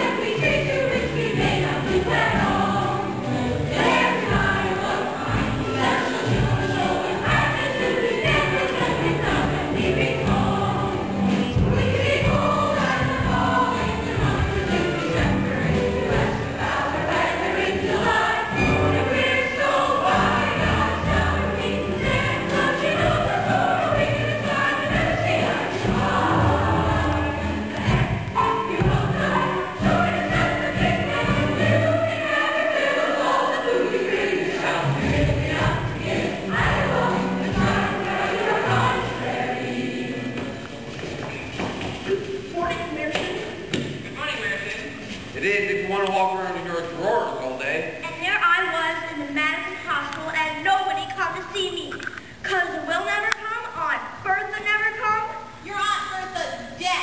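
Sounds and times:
ensemble singing a show tune: 0.0s - 40.7s
instrumental accompaniment: 0.0s - 40.9s.

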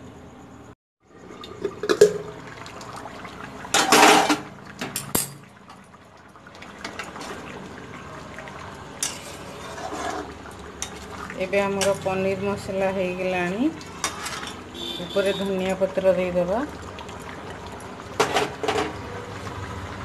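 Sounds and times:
spatula scraping in a pan: 9.0s - 12.1s, 13.9s - 14.8s.

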